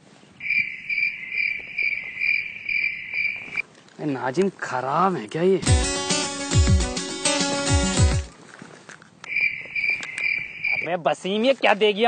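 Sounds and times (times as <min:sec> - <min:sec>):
cricket chirping: 0:00.4 - 0:03.6, 0:09.3 - 0:10.9.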